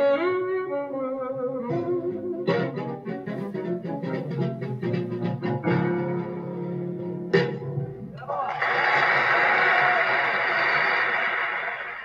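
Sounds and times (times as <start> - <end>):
record surface noise hiss: 0.0 - 12.0.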